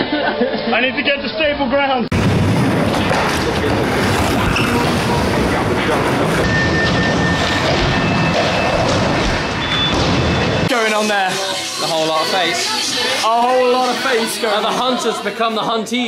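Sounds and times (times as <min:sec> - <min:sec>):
skateboard wheels rolling on concrete: 0:02.1 - 0:09.9.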